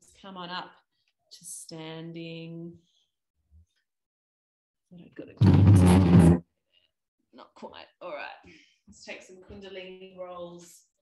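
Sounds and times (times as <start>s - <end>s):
loud harsh burst of voice: 5.4s - 6.4s
people talking: 7.4s - 10.9s.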